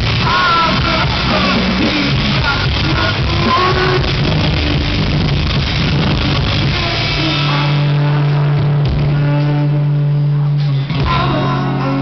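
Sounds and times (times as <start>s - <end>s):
drums: 0.0s - 12.0s
electric guitars: 0.0s - 12.0s.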